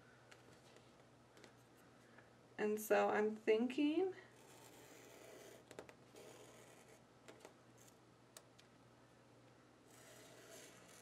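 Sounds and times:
pen tip rubbing on tape: 9.9 - 11.0.

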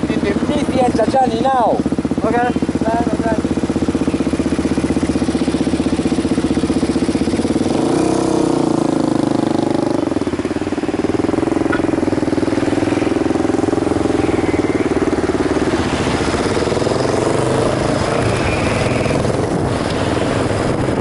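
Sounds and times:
motorcycle engine idling: 0.0 - 21.0.

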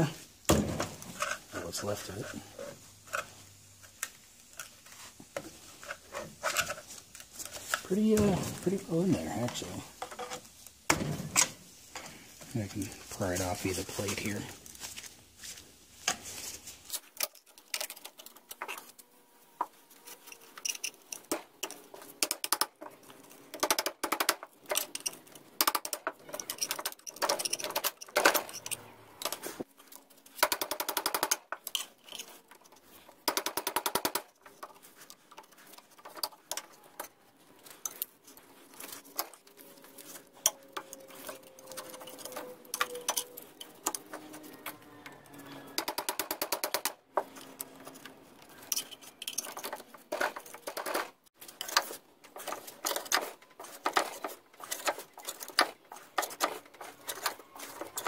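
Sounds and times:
screwdriver scraping metal: 19.8 - 22.6, 24.2 - 29.6, 37.8 - 46.0, 47.2 - 58.0.

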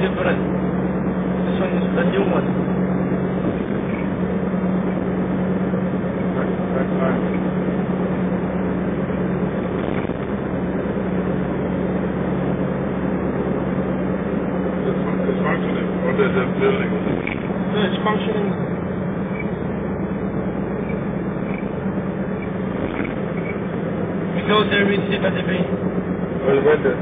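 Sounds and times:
car engine hum: 0.0 - 27.0
road and tyre noise: 0.0 - 27.0.

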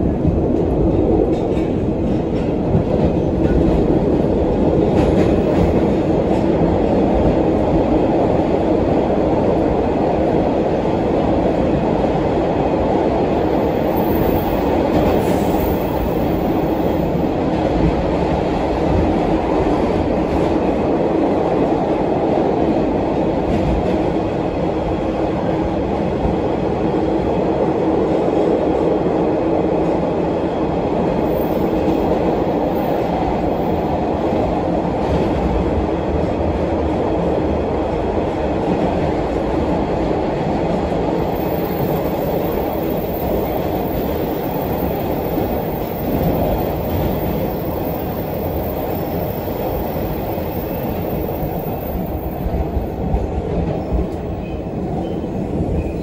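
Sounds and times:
subway wheels rumbling on rail: 0.0 - 56.0.

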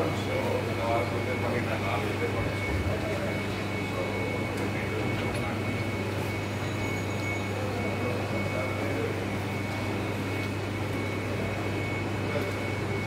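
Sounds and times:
electrical hum: 0.0 - 13.0
faint voices: 0.0 - 13.0.

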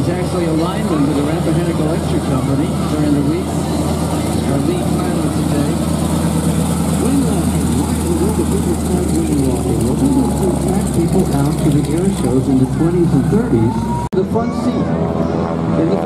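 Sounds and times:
propeller plane engine idling: 0.0 - 16.0.

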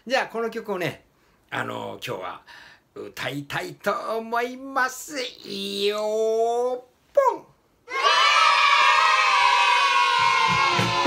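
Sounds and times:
crowd cheering: 7.9 - 11.0.

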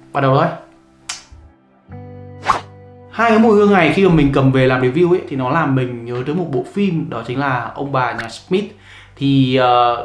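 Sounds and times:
held synth chord: 1.5 - 5.3
swoosh: 2.4 - 2.7.

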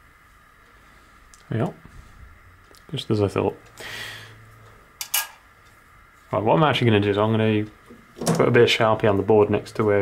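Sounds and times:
metal part scraping clicks: 5.0 - 5.4.

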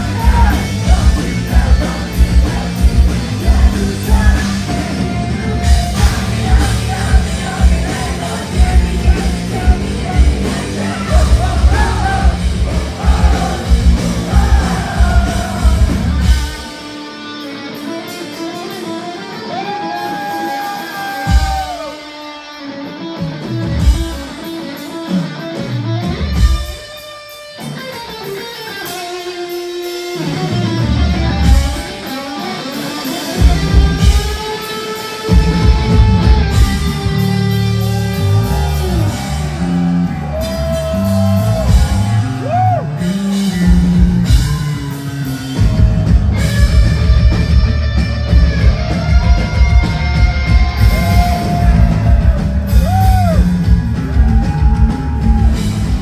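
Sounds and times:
electric guitar bending long notes: 0.0 - 56.0
rock band playing live: 0.0 - 56.0.

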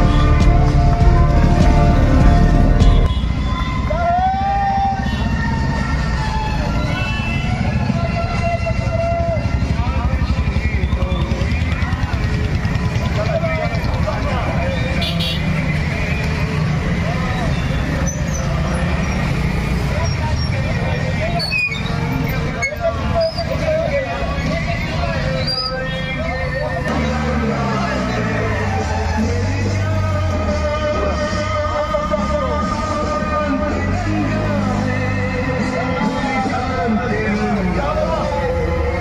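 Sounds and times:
crowd voices: 0.0 - 39.0
motorcycle engines revving: 0.0 - 39.0.

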